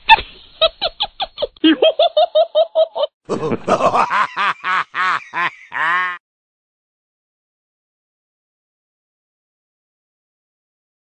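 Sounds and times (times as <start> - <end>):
person laughing: 0.1 - 6.2.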